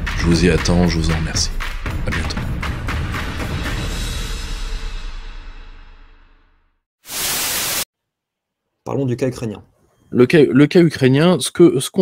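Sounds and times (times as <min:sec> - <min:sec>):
white noise static burst: 0:07.0 - 0:07.9.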